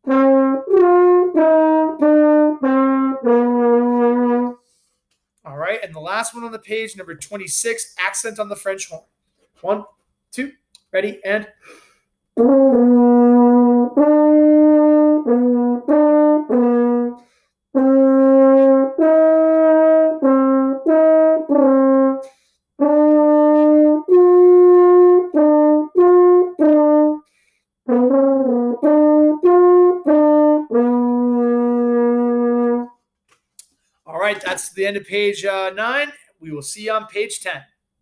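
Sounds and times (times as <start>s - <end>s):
french horn playing melody: 0.0s - 4.7s, 12.4s - 33.0s
breath between phrases: 4.6s - 5.0s, 11.6s - 12.1s, 17.2s - 17.6s, 22.2s - 22.7s, 27.3s - 27.7s.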